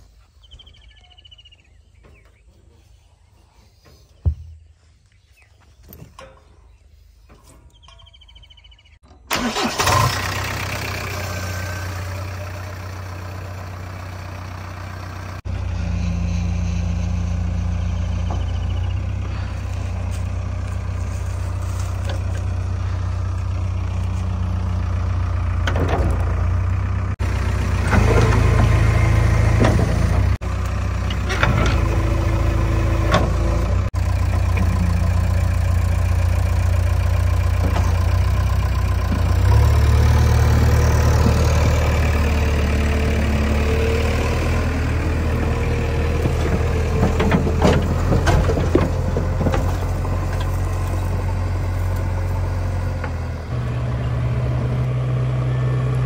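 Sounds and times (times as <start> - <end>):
diesel engine droning: 0.0 - 56.0
loader bucket scraping and clattering: 14.8 - 55.1.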